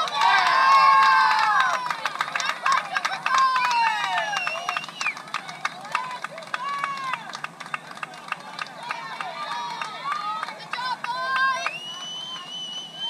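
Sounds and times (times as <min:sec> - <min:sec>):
sharp claps: 0:00.0 - 0:13.0.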